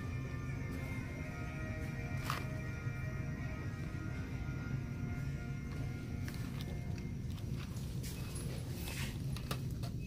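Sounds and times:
low hum of store ambience: 0.0 - 10.0.

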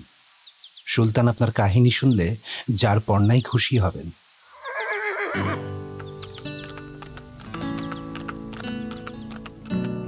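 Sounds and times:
horse whinnying: 4.5 - 5.8
background music with held notes: 5.4 - 10.0
hooves clip-clopping: 5.4 - 10.0.

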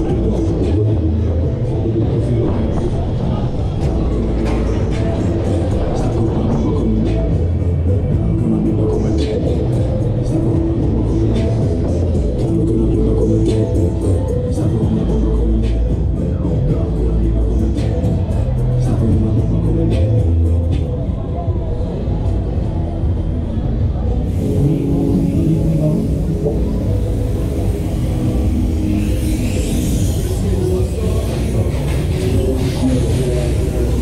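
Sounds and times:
deep rumble of pendulum ride: 0.0 - 34.0
fairground music with heavy bass: 0.0 - 34.0
hiss: 24.3 - 34.0.

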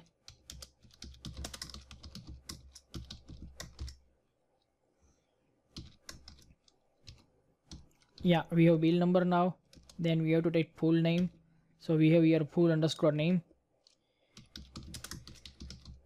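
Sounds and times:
computer keyboard typing: 0.0 - 4.0, 5.7 - 8.4, 9.6 - 10.0, 14.3 - 16.0.

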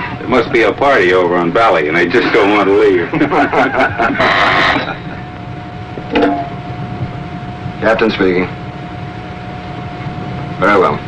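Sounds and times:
low background hum: 0.0 - 11.0
men laughing: 3.0 - 5.3
faint steady tone: 6.0 - 6.8.

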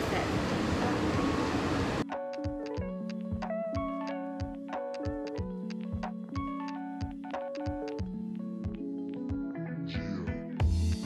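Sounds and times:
monorail car rumble and hiss: 0.0 - 2.0.

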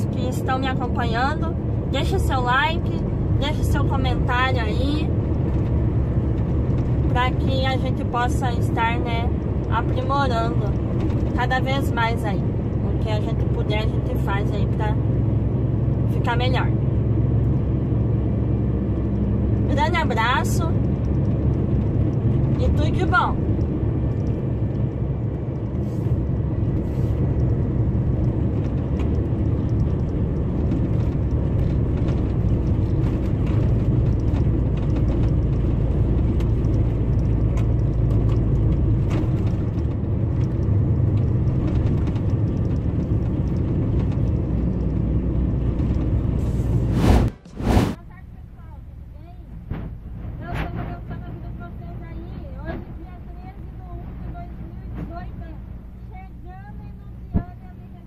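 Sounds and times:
truck diesel engine drone: 0.0 - 58.0.

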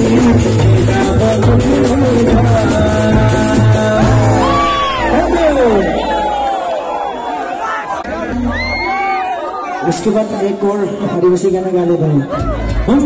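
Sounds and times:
person singing: 0.0 - 5.4
heavy bass beat: 0.0 - 6.4
live band music: 0.0 - 6.6
sliding falling tones: 3.9 - 7.0.

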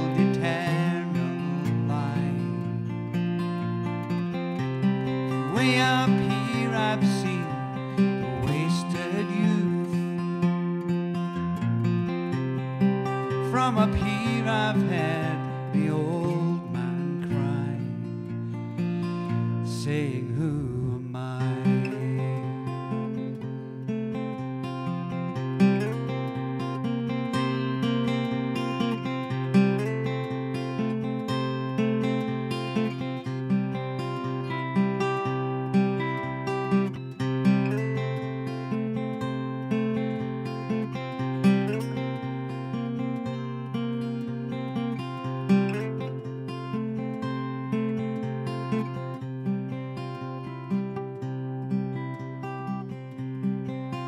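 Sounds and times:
solo acoustic guitar: 0.0 - 54.0.

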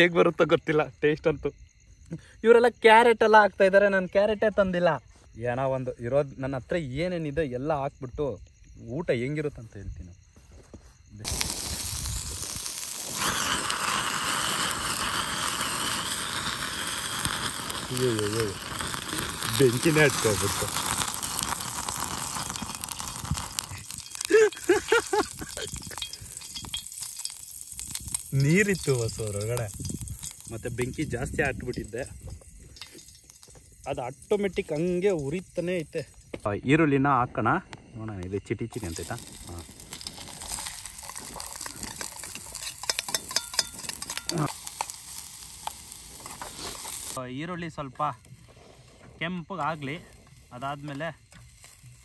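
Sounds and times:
hiss of camping stove flames: 11.0 - 36.5, 38.7 - 52.0
onions sizzling in pot: 11.2 - 36.5, 38.7 - 52.0
spoon stirring and clicking on pot: 42.0 - 45.0.

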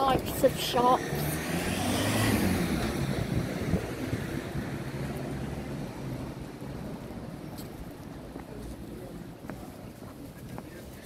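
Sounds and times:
vehicle passing: 0.1 - 7.5.

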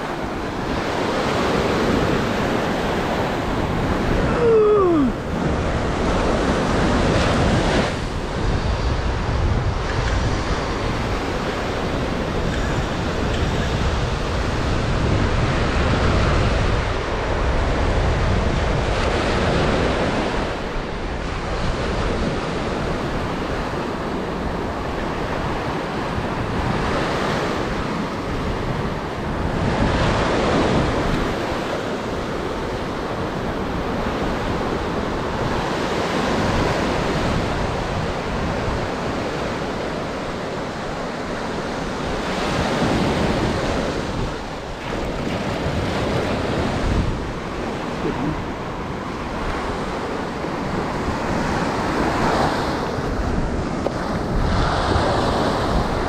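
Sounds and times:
ocean waves breaking on sand: 0.0 - 56.0.

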